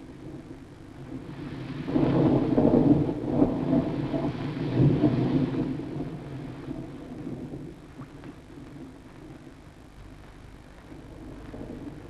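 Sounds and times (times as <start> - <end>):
rolling thunder: 0.0 - 9.5, 10.8 - 12.0.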